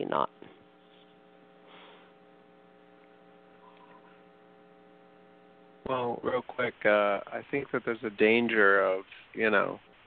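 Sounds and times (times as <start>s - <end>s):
faint electrical hum: 0.0s - 10.0s
man speaking: 5.9s - 9.8s.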